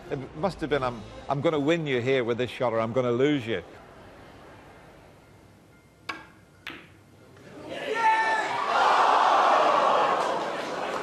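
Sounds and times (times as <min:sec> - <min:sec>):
snooker balls clicking: 0:06.1 - 0:07.0.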